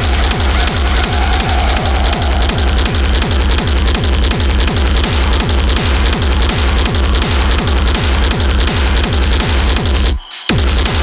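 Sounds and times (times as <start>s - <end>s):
distorted synth: 0.0s - 11.0s
heavy kick drum: 0.0s - 11.0s
industrial techno music: 0.0s - 11.0s.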